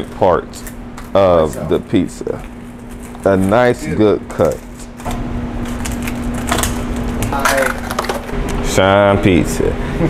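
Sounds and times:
pizza cutter crunching through crust: 0.0s - 8.2s
steady hum: 0.0s - 10.0s.

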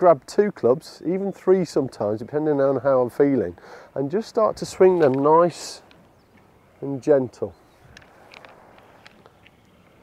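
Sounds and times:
faint outdoor background: 0.0s - 10.0s
golf clubs clicking and tapping: 7.9s - 10.0s.

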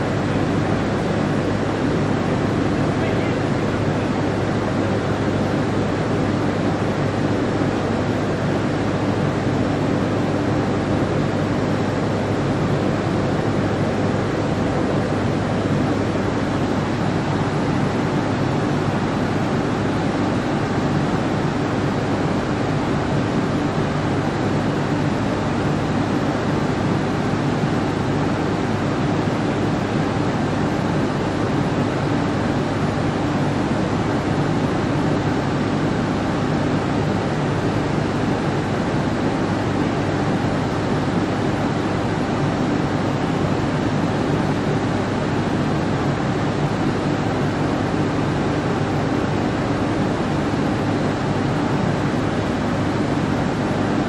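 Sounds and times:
fans faint low drone: 0.0s - 54.0s.

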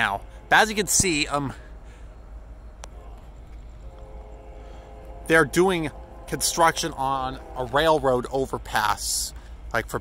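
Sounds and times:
train horn: 0.0s - 2.0s, 2.9s - 9.6s
distant freight train rumble: 0.0s - 10.0s.

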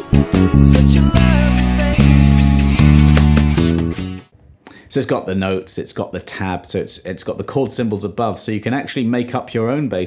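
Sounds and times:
band music with male vocal: 0.0s - 2.8s
electric bass guitar: 0.0s - 4.3s
man speaking: 4.8s - 10.0s.

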